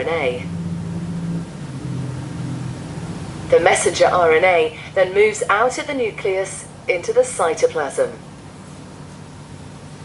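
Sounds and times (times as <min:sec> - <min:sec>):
low droning soundtrack over speakers: 0:00.0 - 0:08.7.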